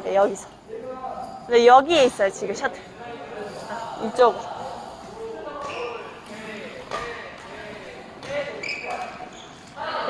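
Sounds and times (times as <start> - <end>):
soft court sounds: 4.4 - 10.0.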